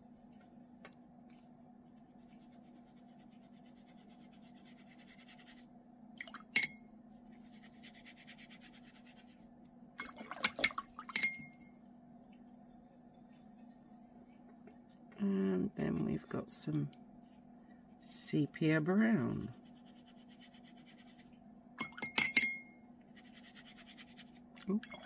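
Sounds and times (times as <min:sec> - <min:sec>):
brush scratching on paper: 0:01.8 - 0:05.7, 0:07.3 - 0:09.4, 0:12.4 - 0:15.0, 0:19.2 - 0:21.3, 0:23.1 - 0:24.5
brush clinking against glass jar: 0:06.2 - 0:06.8, 0:10.0 - 0:14.0, 0:21.8 - 0:22.7.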